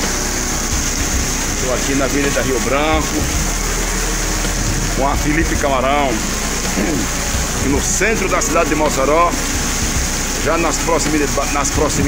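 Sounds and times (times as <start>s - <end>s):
heavy rain on a street: 0.0s - 12.0s.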